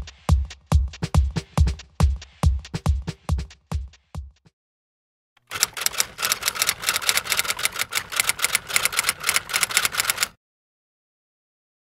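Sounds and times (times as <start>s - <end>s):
typewriter keys clattering: 5.4s - 10.4s.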